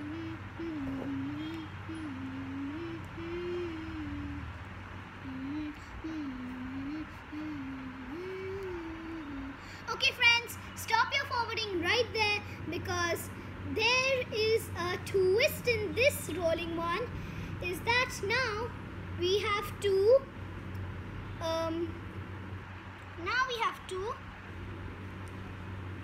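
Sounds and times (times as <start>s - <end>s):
girl humming: 0.0s - 10.1s
girl singing: 0.0s - 20.2s, 21.4s - 22.0s.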